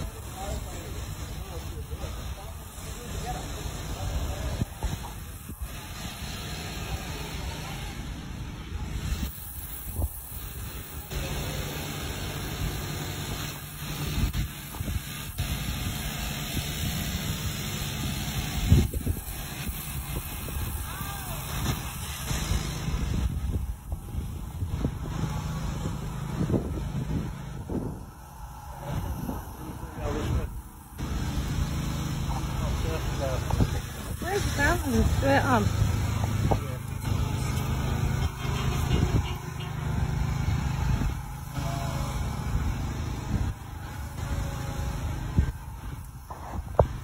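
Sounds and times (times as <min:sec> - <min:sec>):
road traffic passing: 0:00.0 - 0:47.0
wind rumble on microphone: 0:03.2 - 0:07.2, 0:13.8 - 0:31.9, 0:32.6 - 0:47.0.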